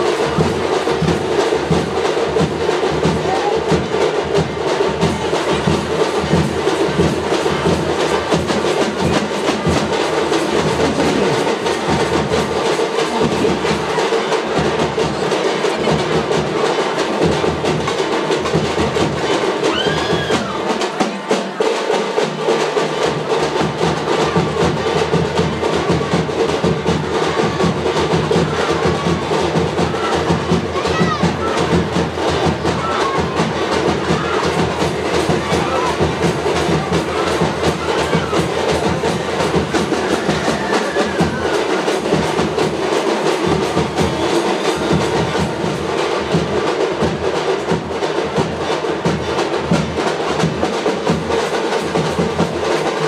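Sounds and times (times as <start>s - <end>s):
fast drum strokes: 0.0s - 53.0s.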